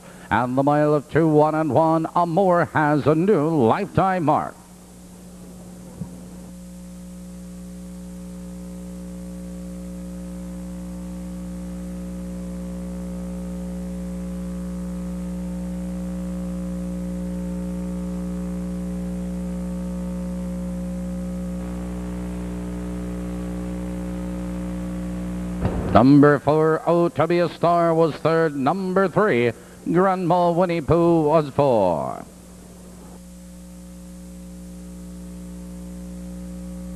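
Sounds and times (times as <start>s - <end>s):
electrical hum: 0.0s - 36.9s.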